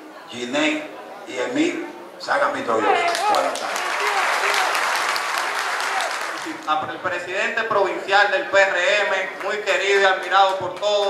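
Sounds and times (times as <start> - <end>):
crowd applauding: 2.9 - 6.8.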